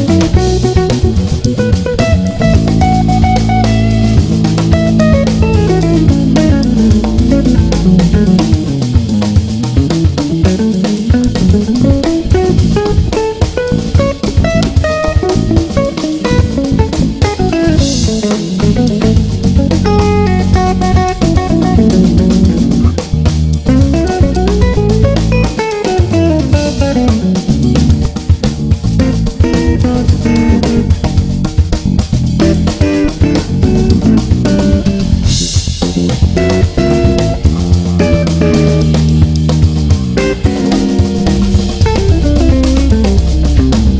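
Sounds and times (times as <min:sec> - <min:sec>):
backing track of bass and drums: 0:00.0 - 0:43.9
electric guitar fast runs: 0:00.0 - 0:43.9.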